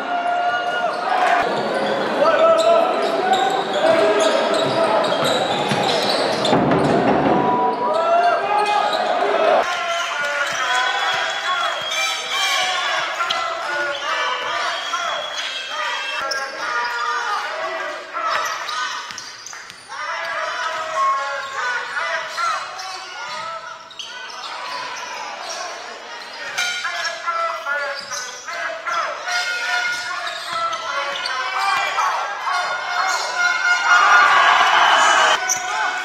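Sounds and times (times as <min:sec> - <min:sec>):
voices echoing in hall: 0:00.0 - 0:36.0.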